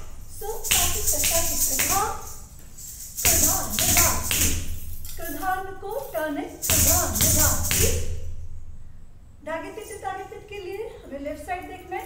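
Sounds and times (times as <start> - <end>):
ankle bells jingling: 0.0 - 8.1
person reciting: 3.2 - 4.3, 5.2 - 8.0
feet stamping on tiled floor: 3.3 - 4.9.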